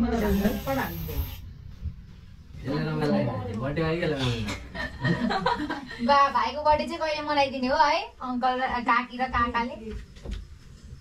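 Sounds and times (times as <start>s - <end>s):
people talking: 0.0s - 1.4s, 6.0s - 10.0s
steady spray-like hiss: 0.0s - 1.8s.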